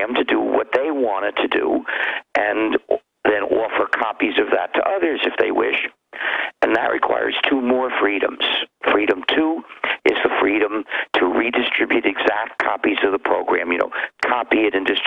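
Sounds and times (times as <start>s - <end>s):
man talking over telephone: 0.0s - 15.0s.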